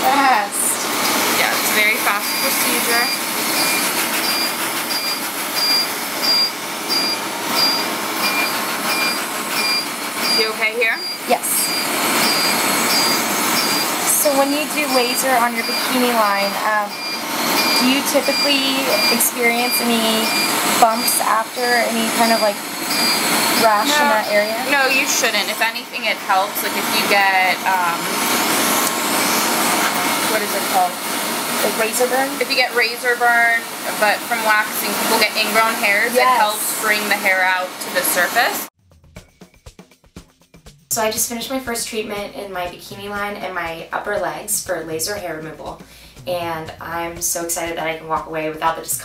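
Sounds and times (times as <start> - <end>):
laser machine short high beeps: 1.8 - 25.4
machine and air hiss: 27.8 - 31.7.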